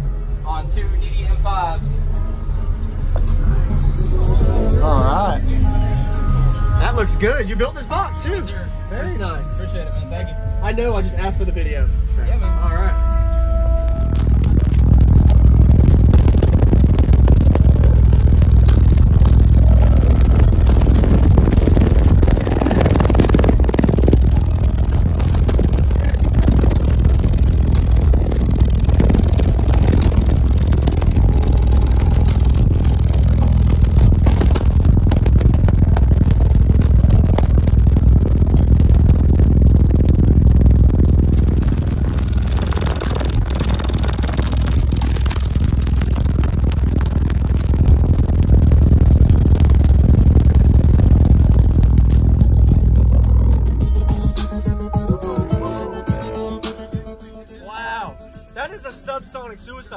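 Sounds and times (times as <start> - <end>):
loud bass-heavy music in a car: 0.0 - 59.9.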